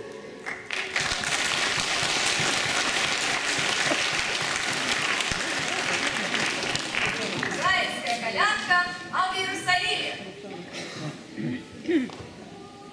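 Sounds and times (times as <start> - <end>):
audience applauding: 0.0 - 8.3.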